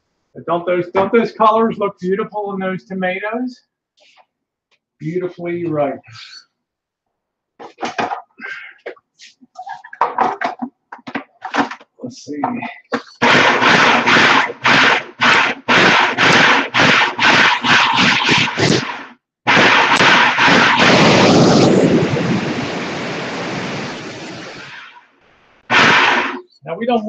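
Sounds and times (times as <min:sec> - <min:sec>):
food processor chopping: 0:13.2 - 0:19.1.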